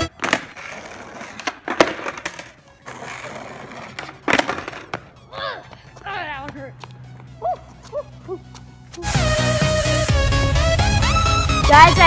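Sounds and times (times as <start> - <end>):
skateboard clattering on asphalt: 0.0 - 6.6.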